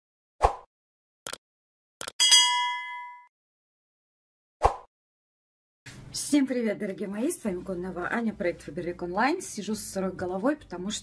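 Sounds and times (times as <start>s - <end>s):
bright bell ding: 2.2s - 3.3s.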